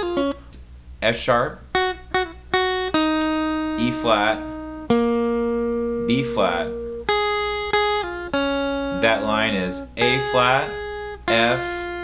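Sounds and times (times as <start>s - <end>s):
electric guitar single-note line: 0.0s - 0.5s, 1.7s - 12.0s.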